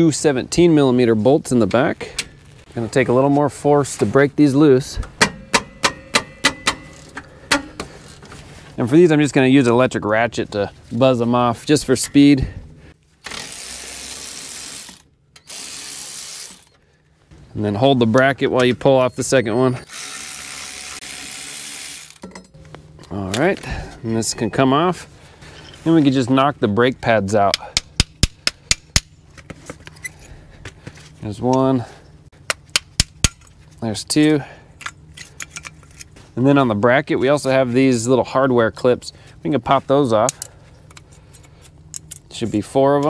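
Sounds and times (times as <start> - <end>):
cordless electric ratchet spinning: 13.3 - 16.7, 19.8 - 22.2.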